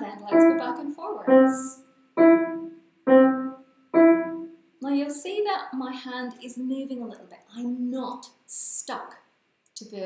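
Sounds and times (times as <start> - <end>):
staccato piano notes: 0.0 - 4.5.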